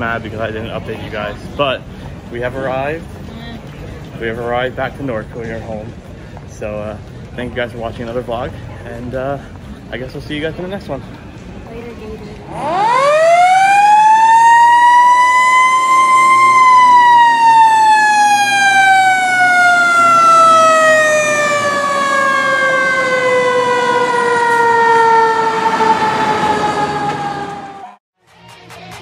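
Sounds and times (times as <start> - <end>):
fire truck mechanical siren wailing: 12.5 - 28.0.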